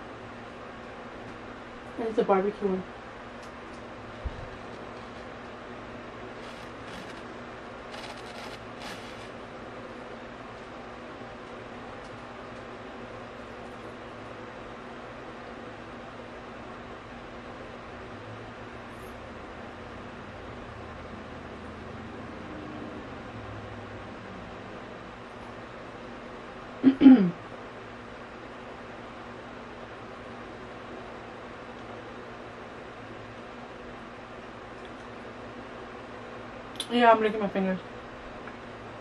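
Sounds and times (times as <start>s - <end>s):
steady low hum: 0.0s - 39.0s
crunchy chewing of fried food: 6.3s - 9.4s.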